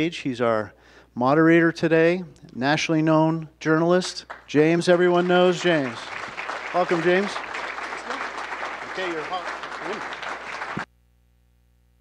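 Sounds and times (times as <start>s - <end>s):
voices: 1.8s - 10.8s
audience applauding: 4.1s - 10.9s.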